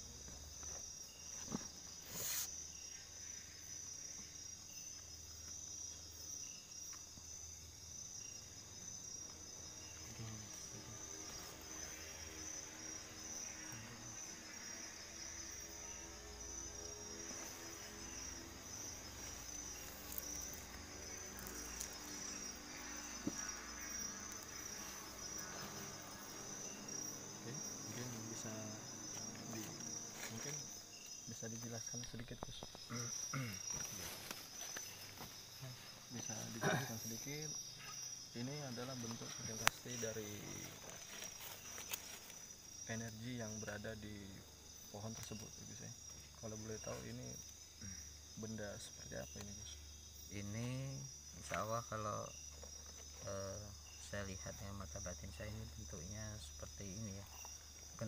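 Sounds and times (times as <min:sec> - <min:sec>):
crickets chirping: 0:00.0 - 0:58.0.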